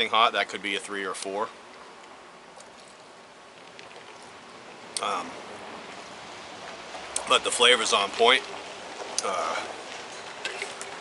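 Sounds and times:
outdoor background hiss: 0.0 - 11.0
sipping and swallowing: 2.5 - 5.4.

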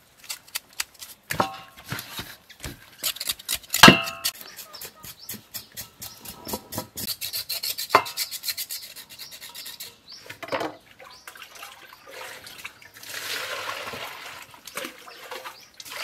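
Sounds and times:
knife scraping pig skin: 0.2 - 10.1.

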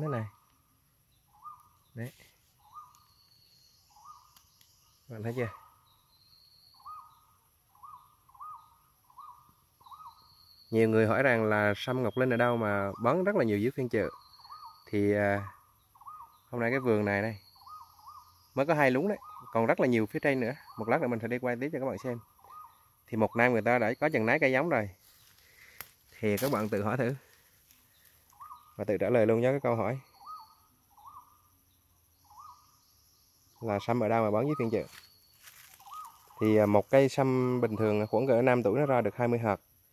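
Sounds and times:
faint whistled bird calls: 0.0 - 39.7
high insect drone: 0.0 - 39.9
bird whistled call: 1.3 - 2.0, 2.6 - 10.8, 14.0 - 16.5, 17.3 - 19.6, 28.0 - 28.8, 29.9 - 31.4, 32.2 - 33.6, 34.4 - 36.5.

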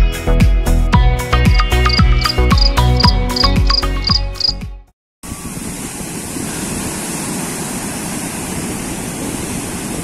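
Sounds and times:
music with kick-drum beat: 0.0 - 4.4
high regular chirp: 1.4 - 4.6.

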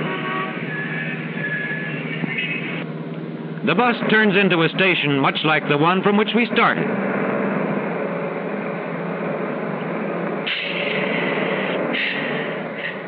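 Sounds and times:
bus engine running: 0.0 - 13.0
bursts of air hiss: 10.4 - 13.0.

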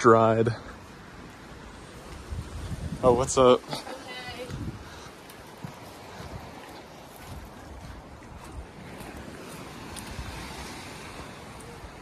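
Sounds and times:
small waves washing on sand: 0.0 - 12.0
wind noise on microphone: 1.8 - 12.0.

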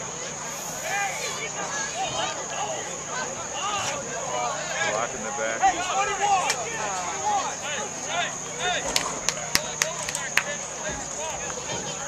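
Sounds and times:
overlapping indistinct voices: 0.0 - 12.0
steady high-pitched whine: 0.0 - 12.0.

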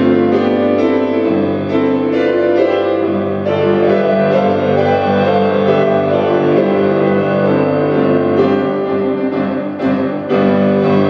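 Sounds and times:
grand piano playing held chords: 0.0 - 11.0.

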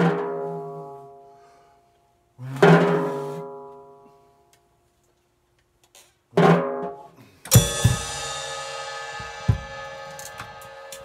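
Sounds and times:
cymbal crash ringing: 7.5 - 11.0
drum hit: 7.5 - 11.0
low drum thumps: 7.5 - 11.0.

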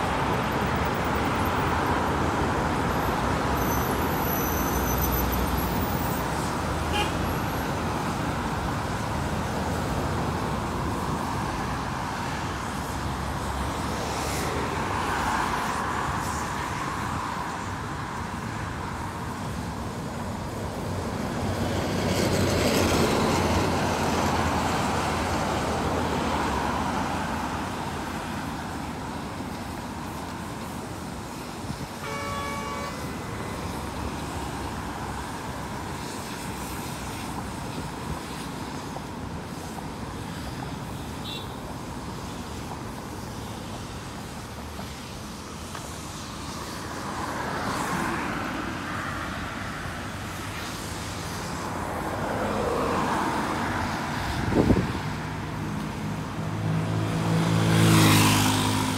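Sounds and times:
vehicles passing: 0.0 - 58.9
vehicle horn toot: 6.9 - 7.2, 32.0 - 33.2.

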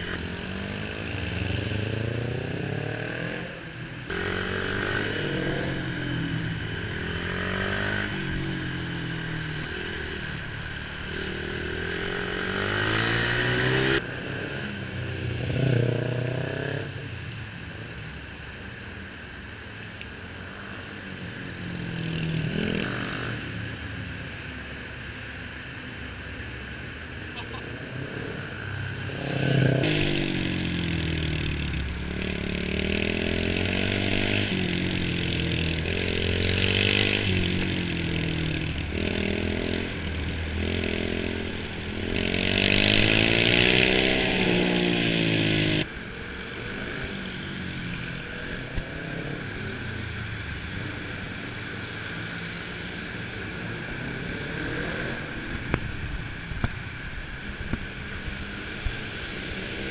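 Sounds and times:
motorcycle engine revving: 0.0 - 17.1, 27.4 - 59.9.

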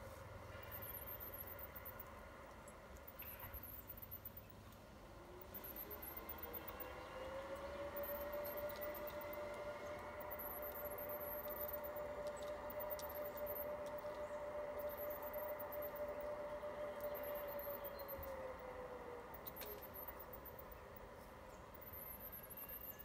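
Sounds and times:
model locomotive motor whine: 0.0 - 23.0
faint high chirps: 2.9 - 4.7, 5.3 - 18.6, 19.3 - 23.0.

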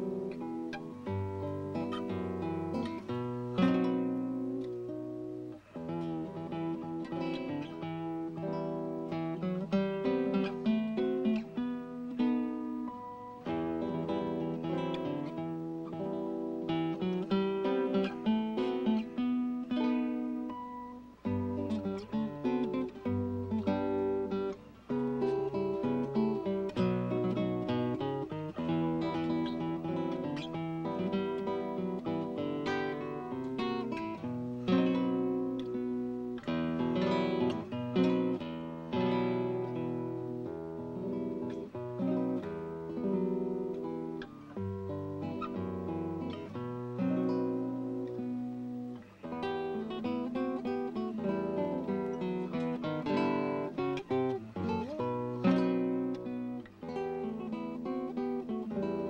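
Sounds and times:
classical guitar fingerstyle: 0.0 - 59.0.

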